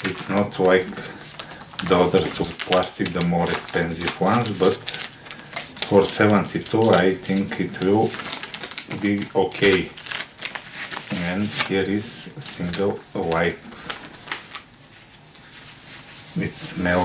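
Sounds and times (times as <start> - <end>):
man talking: 0.0 - 5.1, 5.8 - 8.3, 8.9 - 10.0, 11.1 - 13.8, 16.3 - 17.0
plastic packet crinkling: 0.0 - 17.0.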